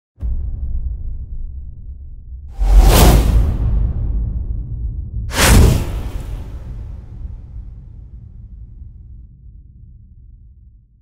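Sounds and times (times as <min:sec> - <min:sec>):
deep low rumble: 0:00.2 - 0:11.0
cinematic whoosh: 0:02.5 - 0:08.8.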